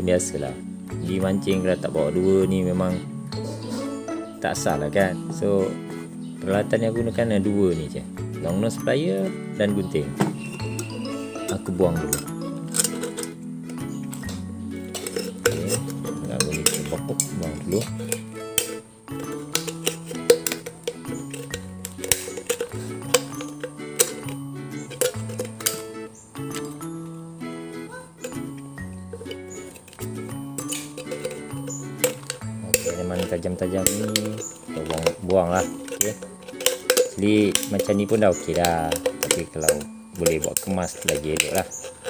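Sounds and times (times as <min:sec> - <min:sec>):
background music with held notes: 0:00.0 - 0:42.0
scissors cutting aluminium can: 0:10.3 - 0:26.8, 0:28.1 - 0:42.0.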